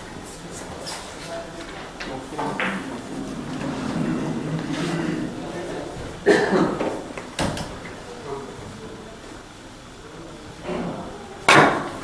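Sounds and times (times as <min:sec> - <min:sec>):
billiard balls clacking: 0:02.3 - 0:07.9
cue striking billiard ball: 0:11.5 - 0:12.0.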